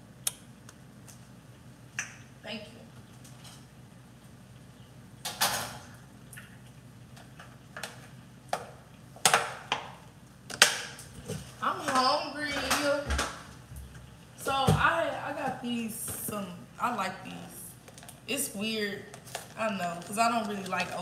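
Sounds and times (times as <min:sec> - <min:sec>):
person speaking: 0:11.6 - 0:13.2, 0:14.4 - 0:21.0.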